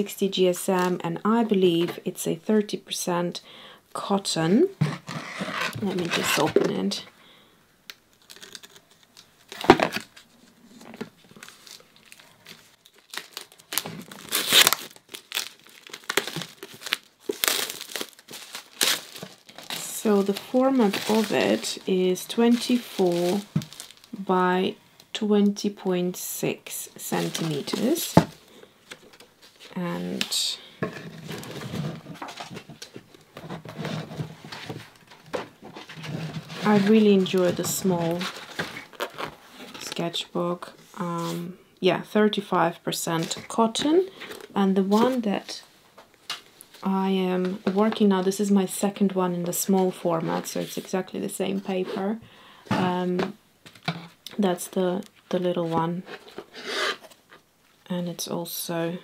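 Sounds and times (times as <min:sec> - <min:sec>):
plastic shrink-wrap tearing and crinkling: 0:08.1 - 0:24.2, 0:38.1 - 0:39.8
paper pages rustling: 0:08.2 - 0:24.1.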